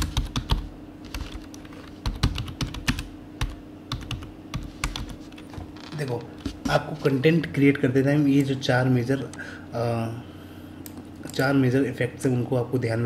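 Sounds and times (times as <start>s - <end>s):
computer keyboard typing: 0.0s - 5.2s.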